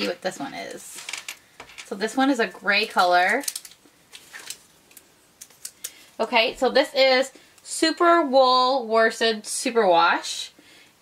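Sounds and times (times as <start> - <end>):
yarn and paper label rustling: 2.7 - 6.1.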